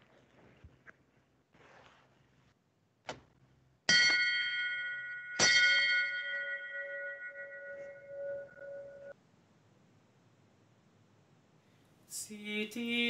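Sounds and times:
bell ringing: 3.9 - 9.2.

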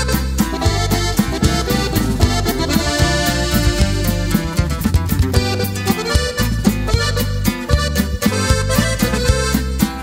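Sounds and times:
accordion melody: 0.0 - 10.0
bass line: 0.0 - 10.0
steady beat: 0.0 - 10.0.

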